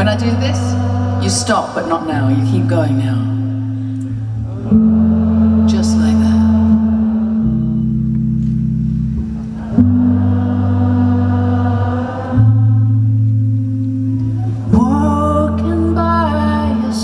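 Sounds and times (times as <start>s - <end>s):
audience and band drone chord: 0.0s - 14.8s.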